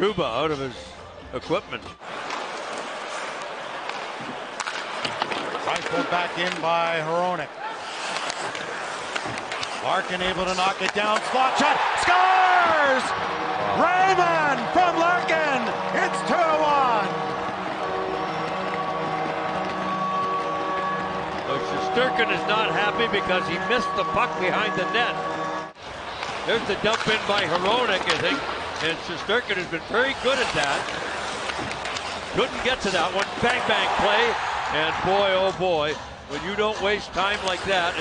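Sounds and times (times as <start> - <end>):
skates on ice: 2.0 - 25.2, 25.9 - 34.4, 36.4 - 38.0
sticks and puck clicking: 2.2 - 6.7, 7.9 - 11.4, 26.2 - 29.4, 30.2 - 33.8
excited commentator speaking: 9.8 - 13.1, 13.7 - 17.1, 21.5 - 25.2, 32.4 - 38.0
crowd cheering: 10.8 - 21.7, 33.1 - 35.5
arena goal horn: 12.6 - 25.7.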